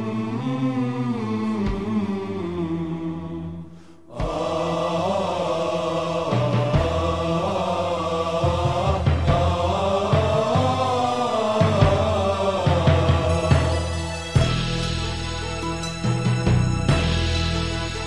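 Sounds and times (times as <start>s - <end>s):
instrumental pop music: 8.4s - 18.0s.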